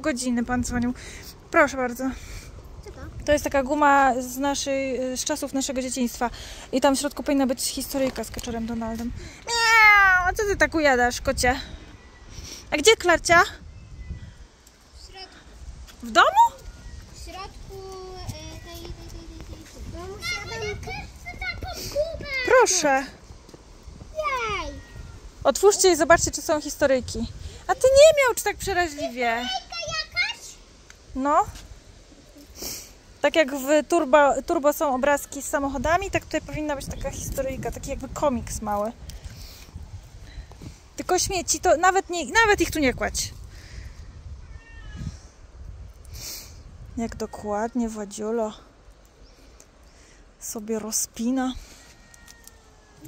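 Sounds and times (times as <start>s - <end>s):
wind rumble on microphone: 0.4s - 5.3s, 7.6s - 29.1s, 35.4s - 47.8s
children's voices: 2.8s - 3.2s, 8.9s - 10.4s, 16.2s - 23.1s, 24.0s - 26.0s, 27.4s - 30.8s
cat meowing: 44.4s - 45.2s.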